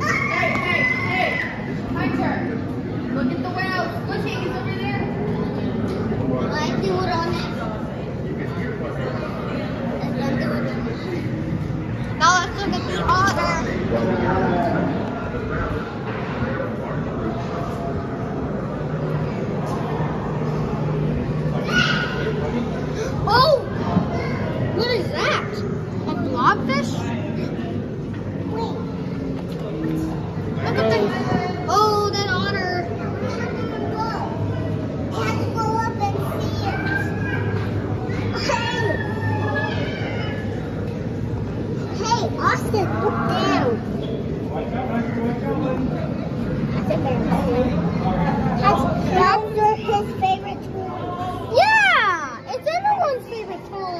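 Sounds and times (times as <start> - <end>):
children calling out: 0.0 - 1.9, 21.4 - 25.8, 35.1 - 40.9
crowd chatter indoors: 0.0 - 53.9.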